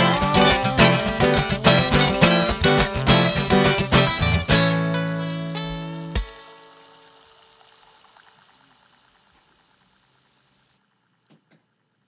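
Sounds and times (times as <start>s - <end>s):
guitar chord ringing: 0.0s - 7.4s
faint hiss: 4.6s - 12.0s.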